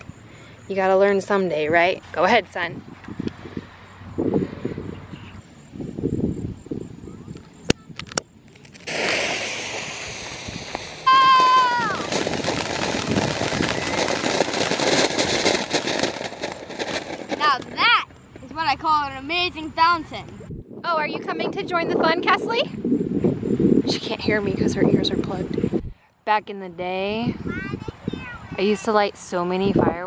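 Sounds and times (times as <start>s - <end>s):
firework fountain hissing and crackling: 8.5s - 18.0s.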